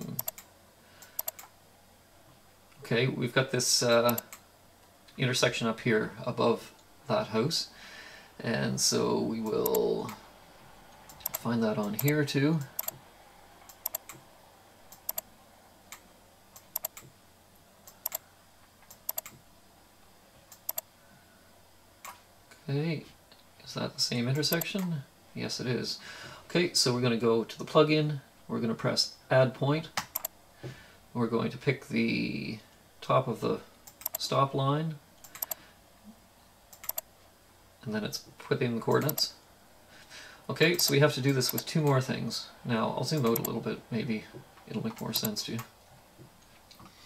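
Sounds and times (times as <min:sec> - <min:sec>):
computer clicks: 0:00.0 - 0:01.5, 0:04.1 - 0:04.4, 0:09.5 - 0:10.2, 0:11.1 - 0:13.0, 0:13.7 - 0:14.2, 0:14.9 - 0:15.3, 0:16.6 - 0:17.1, 0:17.8 - 0:18.2, 0:18.8 - 0:19.4, 0:20.5 - 0:20.9, 0:24.4 - 0:24.8, 0:30.0 - 0:30.4, 0:33.8 - 0:34.2, 0:35.2 - 0:35.6, 0:36.7 - 0:37.1, 0:38.9 - 0:39.3, 0:40.8 - 0:42.0, 0:43.2 - 0:43.6, 0:44.9 - 0:45.7.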